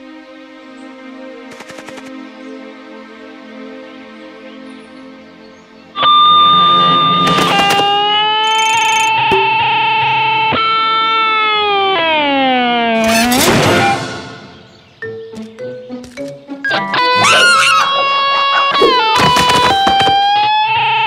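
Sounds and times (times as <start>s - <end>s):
soft background music: 0.0s - 7.8s, 14.0s - 21.0s.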